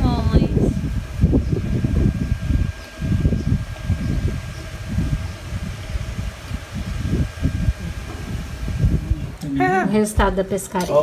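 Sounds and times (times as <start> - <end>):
wind buffeting microphone: 0.0 - 10.7.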